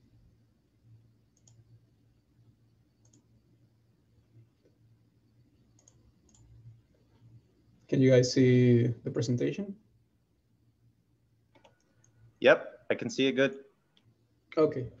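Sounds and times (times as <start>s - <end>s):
low steady hum: 0.0s - 15.0s
computer mouse clicks: 1.3s - 1.8s, 3.0s - 3.3s, 5.6s - 7.2s, 11.5s - 12.2s.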